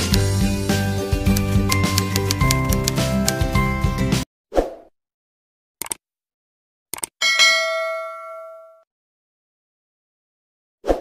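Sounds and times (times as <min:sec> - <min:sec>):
quick clicks: 0:01.3 - 0:03.4, 0:05.8 - 0:06.0, 0:06.9 - 0:07.2
notification bell ding: 0:07.2 - 0:08.8.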